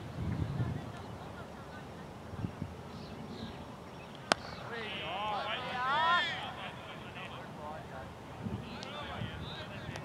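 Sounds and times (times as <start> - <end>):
bat hitting ball crack: 4.2 - 4.6.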